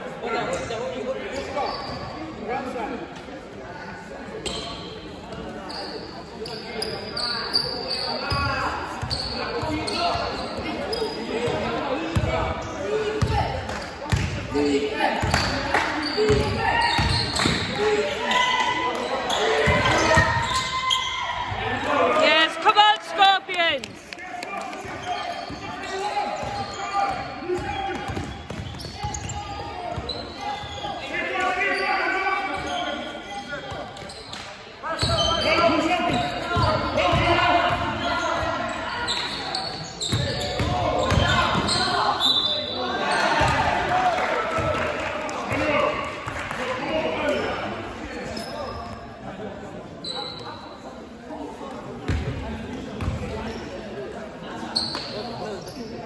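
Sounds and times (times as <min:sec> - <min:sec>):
shoe squeaks on court: 0:04.4 - 0:11.6, 0:15.3 - 0:18.4, 0:19.0 - 0:21.2, 0:25.0 - 0:37.2, 0:38.0 - 0:43.5, 0:48.1 - 0:49.1, 0:50.0 - 0:50.8, 0:54.6 - 0:56.0.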